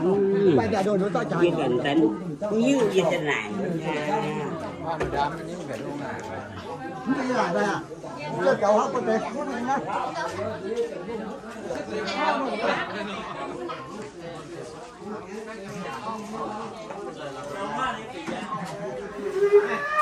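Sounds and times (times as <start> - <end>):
people talking at once: 0.0 - 20.0.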